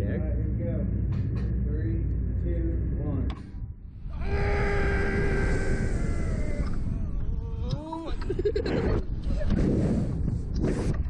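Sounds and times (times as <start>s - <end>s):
wind rumbling on microphone: 0.0s - 11.0s
person screaming: 4.1s - 8.1s.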